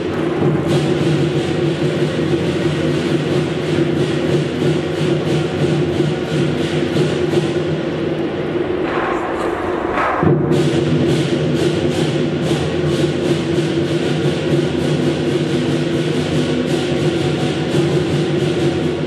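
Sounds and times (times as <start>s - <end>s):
cymbals clashing: 0.0s - 19.0s
large drum beating: 0.0s - 19.0s.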